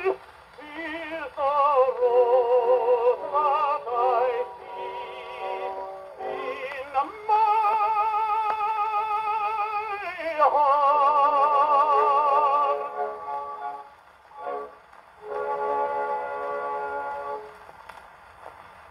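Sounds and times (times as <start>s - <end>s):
tenor singing on old gramophone: 0.0s - 17.4s.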